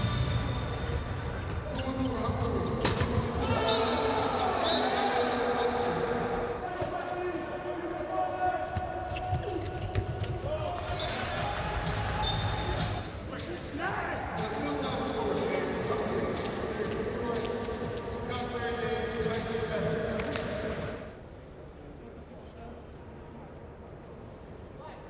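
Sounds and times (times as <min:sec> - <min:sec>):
players shouting: 0:03.2 - 0:09.6, 0:10.5 - 0:13.1
handball bouncing on court: 0:08.7 - 0:13.0.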